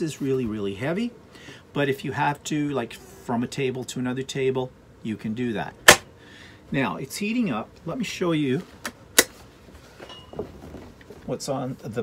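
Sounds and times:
faint handling sounds: 0:07.7 - 0:12.0.

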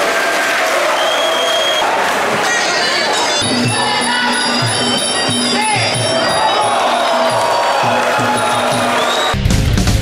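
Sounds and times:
drum beat: 0:02.1 - 0:10.0.

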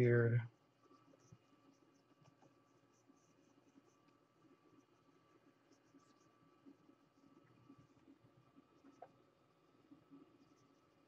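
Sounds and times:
stylus scratching on tablet: 0:00.0 - 0:11.0.

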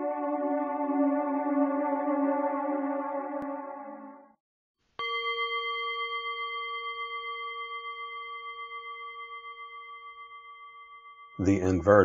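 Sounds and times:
musical intro: 0:00.0 - 0:04.4
singing bowl ringing: 0:05.0 - 0:12.0.

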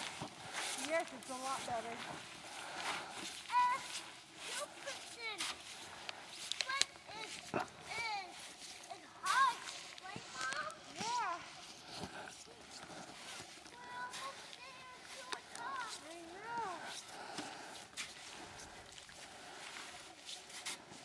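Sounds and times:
footsteps crunching in snow: 0:00.0 - 0:21.0.

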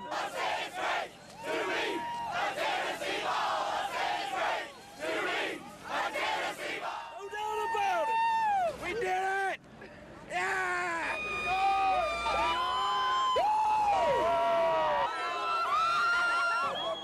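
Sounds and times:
crowd shouting and cheering: 0:00.0 - 0:09.5, 0:10.4 - 0:17.0.

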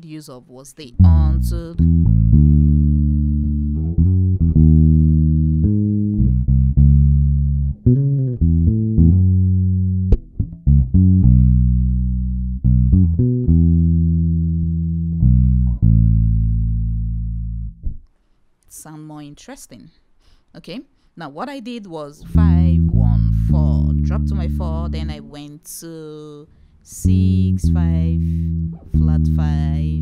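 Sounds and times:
electric bass guitar playing: 0:01.0 - 0:18.1, 0:22.2 - 0:25.5, 0:26.9 - 0:30.0
bass string click: 0:01.0 - 0:18.2.

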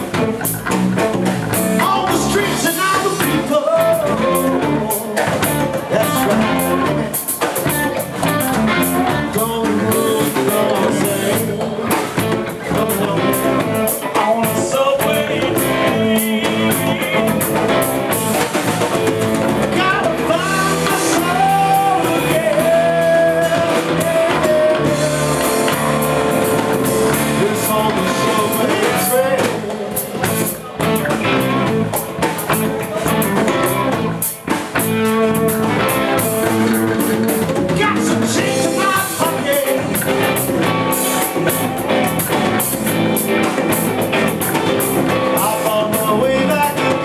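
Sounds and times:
bass guitar: 0:00.0 - 0:47.0
drum kit: 0:00.0 - 0:47.0
electric guitar: 0:00.0 - 0:47.0
lead singer singing: 0:01.5 - 0:47.0.

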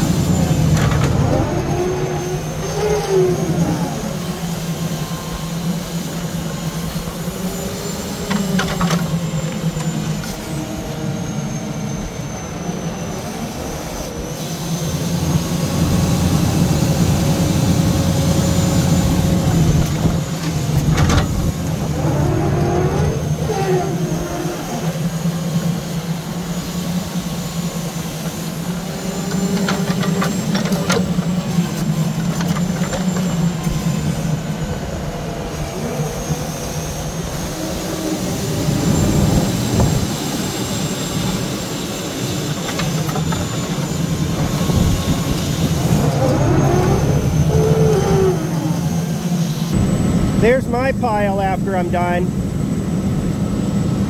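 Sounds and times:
truck engine running: 0:00.0 - 0:12.8, 0:13.6 - 0:54.0
hydraulic whine: 0:00.0 - 0:54.0.

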